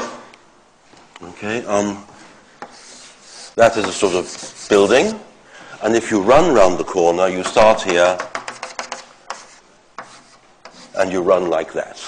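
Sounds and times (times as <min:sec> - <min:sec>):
pen scratching across a board: 0:02.6 - 0:05.1, 0:08.2 - 0:11.0.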